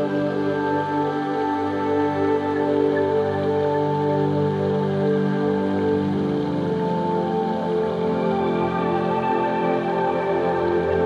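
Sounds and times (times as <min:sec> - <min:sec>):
soft synthesizer pad music: 0:00.0 - 0:11.0.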